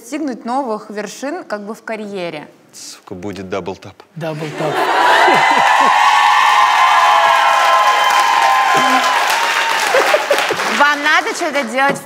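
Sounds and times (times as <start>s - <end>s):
audience laughing: 4.4s - 6.2s, 8.6s - 10.9s
crowd cheering: 4.4s - 12.0s
applause: 5.1s - 12.0s.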